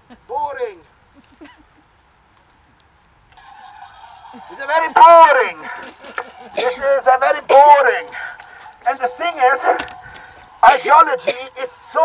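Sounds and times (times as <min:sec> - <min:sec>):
megaphone hiss with thin hum: 0:03.4 - 0:12.0.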